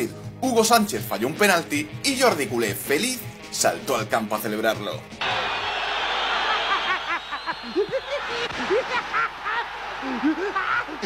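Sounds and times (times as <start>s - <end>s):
stadium crowd noise: 5.2s - 11.0s
cartoon character laughing and whooping: 7.1s - 11.0s.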